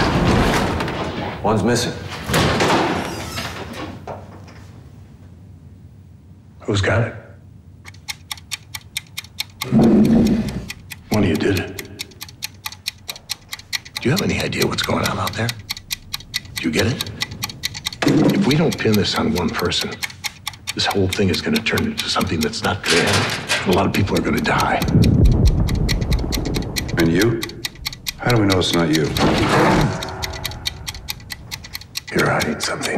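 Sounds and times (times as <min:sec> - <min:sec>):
clock-like ticking: 0:07.8 - 0:32.9.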